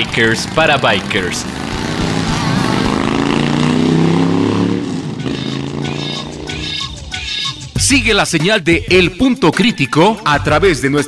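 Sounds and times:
motorcycle engine revving: 0:00.0 - 0:07.8
music with a beat: 0:05.3 - 0:11.0.

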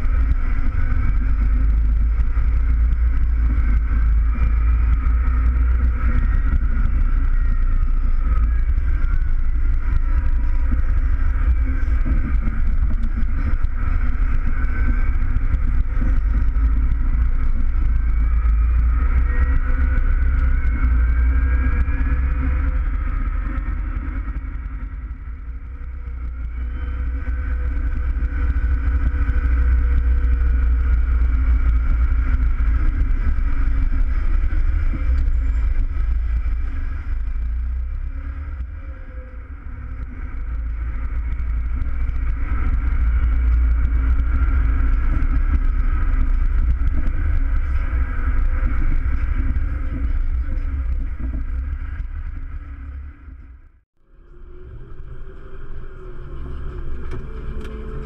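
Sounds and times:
tractor engine rumbling with whine: 0:00.0 - 0:58.0.

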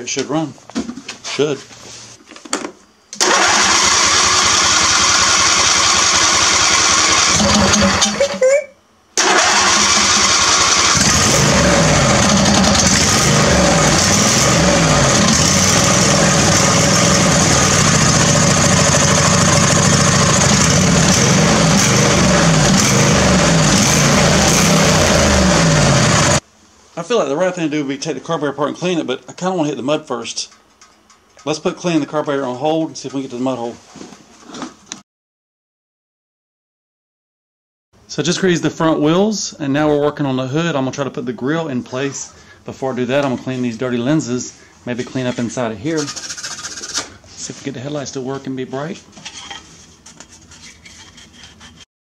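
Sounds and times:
lawn tractor engine running: 0:03.2 - 0:08.2, 0:09.2 - 0:26.4.

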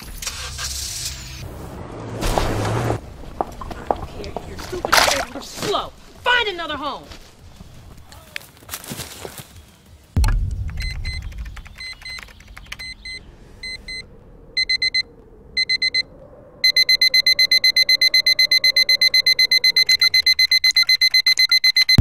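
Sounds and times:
low boom: 0:10.2 - 0:17.0
digital alarm clock beeping: 0:14.6 - 0:15.0, 0:15.6 - 0:16.0, 0:16.6 - 0:22.0.

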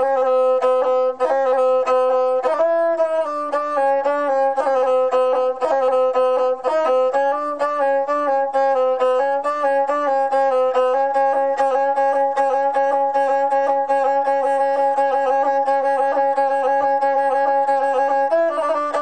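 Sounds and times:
bowed single-string fiddle melody: 0:00.0 - 0:19.0.

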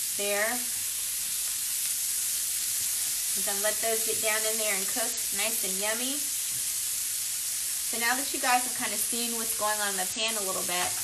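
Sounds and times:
burger patties sizzling in skillet: 0:00.0 - 0:11.0.

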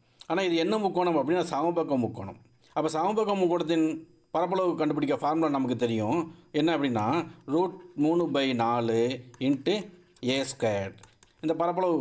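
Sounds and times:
man speaking: 0:00.3 - 0:12.0.

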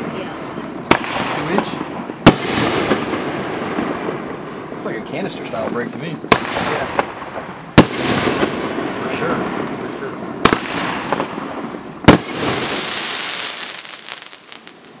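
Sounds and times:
fireworks bangs: 0:00.0 - 0:15.0
fireworks hissing and crackling: 0:00.0 - 0:15.0.

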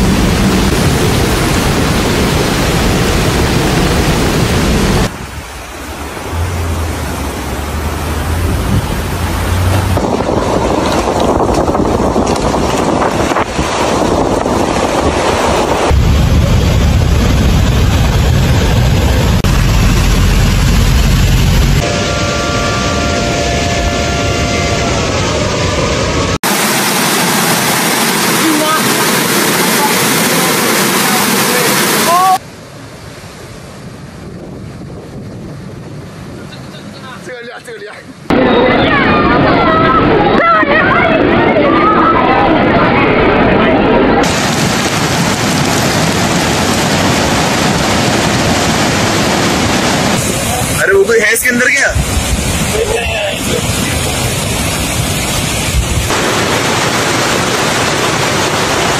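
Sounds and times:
rushing floodwater: 0:00.0 - 0:58.9
wind buffeting microphone: 0:08.1 - 0:21.9, 0:33.8 - 0:36.7, 0:52.0 - 0:58.9
steady multi-pitch tone: 0:19.4 - 0:27.6.

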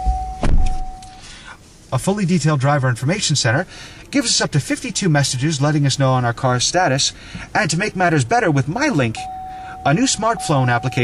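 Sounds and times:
heavy thump: 0:00.0 - 0:00.9
high electronic tone: 0:09.2 - 0:11.0.

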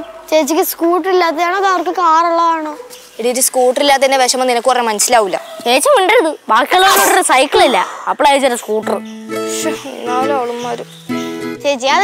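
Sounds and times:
person speaking: 0:05.8 - 0:10.9.

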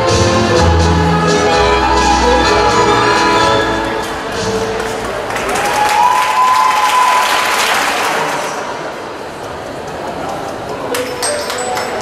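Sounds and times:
audience applauding: 0:04.6 - 0:08.8.

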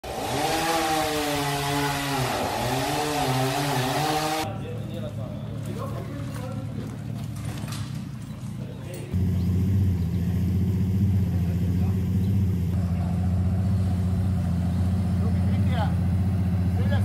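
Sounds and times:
engine with wavering pitch: 0:09.1 - 0:17.0
low engine hum: 0:09.1 - 0:17.0.

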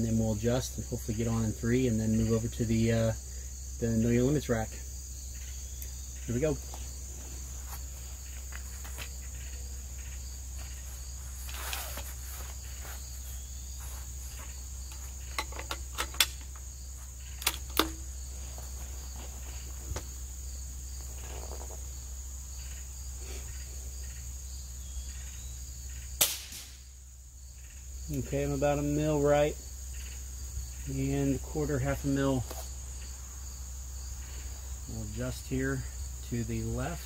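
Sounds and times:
crickets chirring: 0:00.0 - 0:37.0
suppressed rifle shots: 0:26.2 - 0:26.9.

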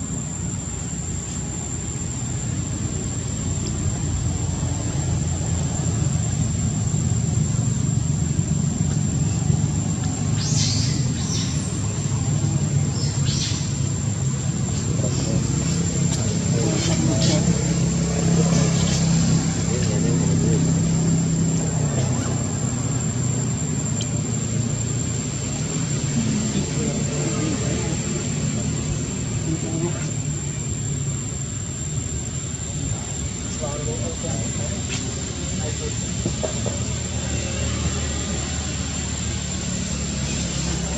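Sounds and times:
steady low hum: 0:00.0 - 0:40.9
faint voices: 0:11.7 - 0:24.8, 0:25.6 - 0:31.4.

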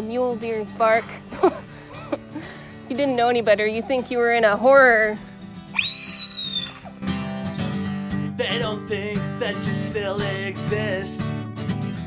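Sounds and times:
acoustic guitar strumming: 0:00.0 - 0:12.0
high whistle-like cry: 0:05.7 - 0:06.9.

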